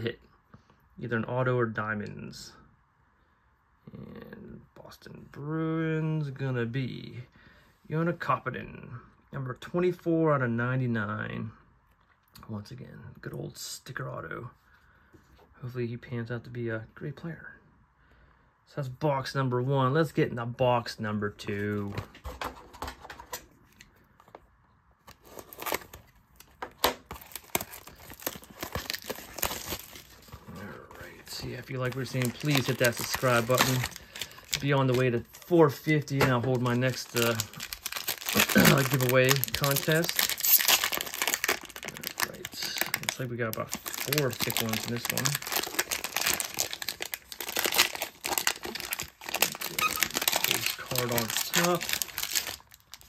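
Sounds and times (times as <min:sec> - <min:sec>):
plastic wrap crinkling and tearing: 0:25.1 - 0:53.0
plastic wrap being slit: 0:31.9 - 0:35.0, 0:36.8 - 0:43.1, 0:43.8 - 0:53.0.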